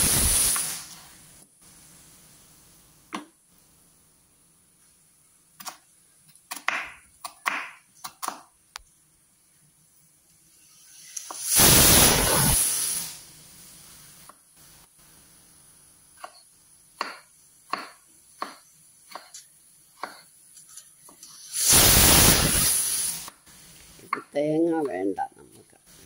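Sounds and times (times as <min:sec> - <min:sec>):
knife chopping on wooden board: 0:06.5 - 0:08.4, 0:17.0 - 0:19.4, 0:20.0 - 0:20.2.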